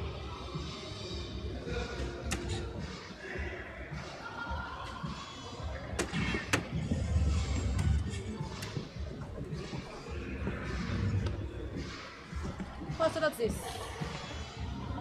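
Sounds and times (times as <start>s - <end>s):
background music: 0.0s - 15.0s
low rumble of large hall: 0.0s - 15.0s.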